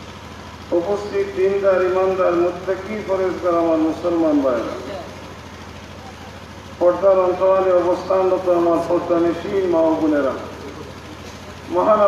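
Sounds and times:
steady low hum: 0.0 - 12.0
man chanting a sermon: 11.7 - 12.0.

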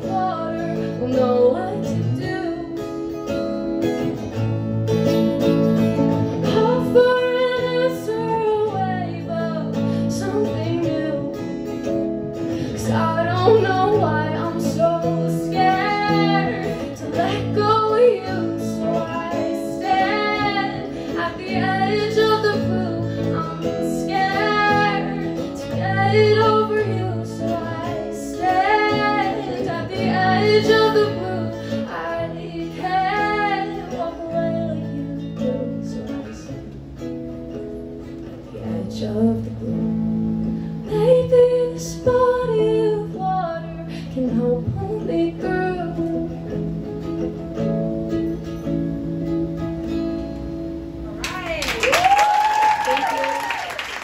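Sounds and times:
woman singing: 0.0 - 3.5, 6.3 - 36.8, 38.3 - 46.9
acoustic guitar chords: 0.0 - 51.8.

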